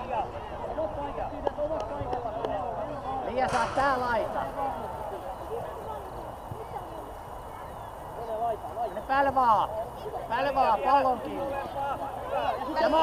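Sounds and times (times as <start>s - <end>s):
children calling and shouting: 2.2s - 13.0s.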